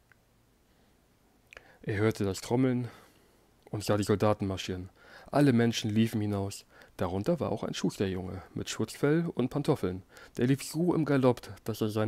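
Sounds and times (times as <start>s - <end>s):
faint mouth clicks: 1.4s - 1.7s
person speaking: 1.8s - 12.0s.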